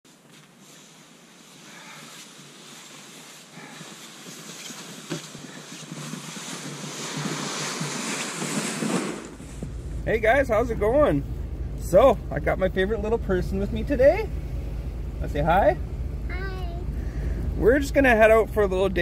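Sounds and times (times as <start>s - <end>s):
footsteps crunching in snow: 0.1s - 10.0s
sled dragging over snow: 0.1s - 11.2s.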